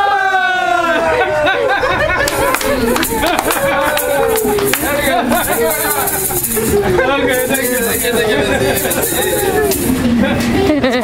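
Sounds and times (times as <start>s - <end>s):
excited voices overlapping: 0.0s - 10.8s
laughter: 1.2s - 7.5s, 8.2s - 11.0s
sharp handclaps: 2.3s - 6.5s
hand shaker rattle: 2.3s - 10.1s.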